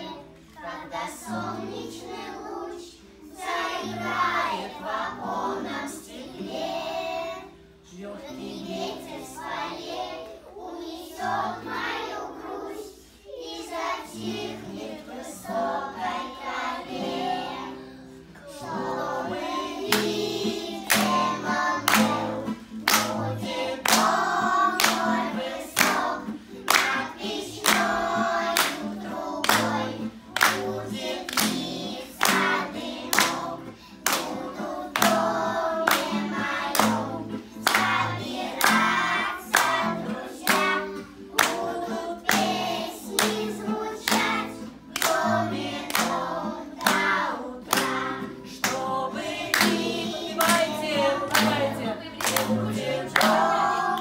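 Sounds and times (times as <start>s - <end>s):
acoustic guitar: 0.0s - 54.0s
children singing: 0.0s - 54.0s.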